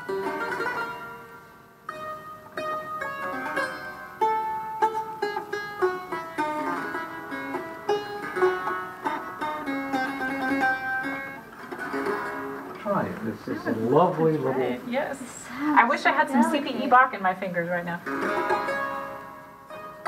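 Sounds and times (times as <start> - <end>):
clavichord playing: 0.0 - 14.9, 15.8 - 20.0.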